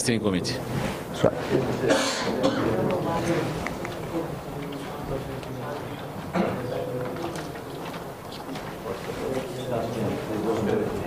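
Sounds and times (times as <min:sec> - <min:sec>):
person coughing: 0:01.8 - 0:02.8.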